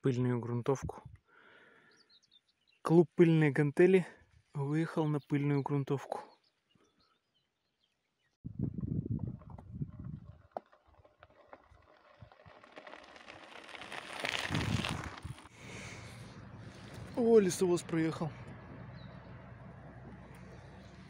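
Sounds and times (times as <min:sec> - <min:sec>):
bicycle tyres on gravel: 0:09.3 - 0:21.0.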